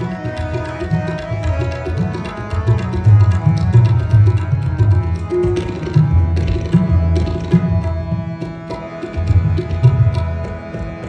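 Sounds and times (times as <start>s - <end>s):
harmonium sustained chords: 0.0s - 11.0s
tabla steady rhythm: 0.0s - 11.0s.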